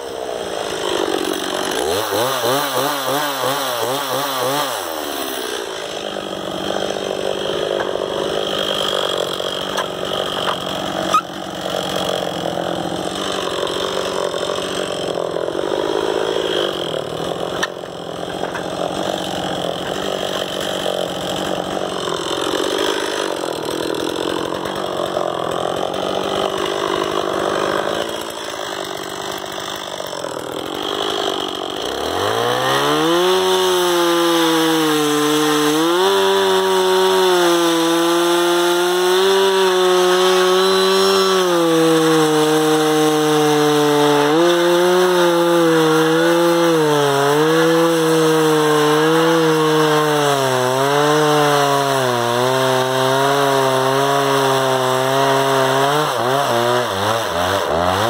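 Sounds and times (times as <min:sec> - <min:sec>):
chainsaw cutting wood: 0:00.0 - 0:58.0.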